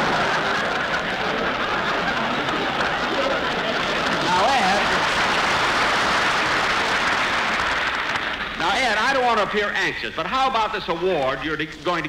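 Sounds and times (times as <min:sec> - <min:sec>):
audience laughing and applauding: 0:00.0 - 0:09.9
man talking: 0:04.2 - 0:05.0, 0:08.6 - 0:12.0.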